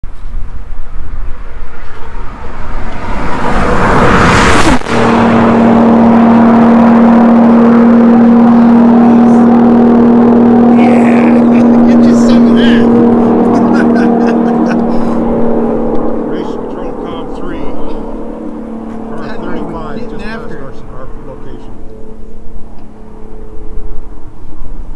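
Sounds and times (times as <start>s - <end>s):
loud car engine note: 0.1s - 24.9s
car racing past: 1.3s - 24.4s.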